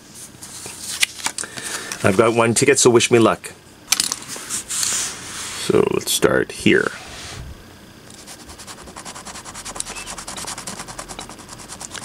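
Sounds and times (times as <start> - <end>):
coin scraping lottery ticket: 8.2 - 12.0.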